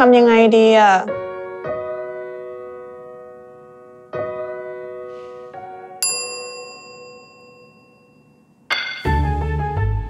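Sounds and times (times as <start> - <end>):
bright bell-like ding: 6.0 - 9.2.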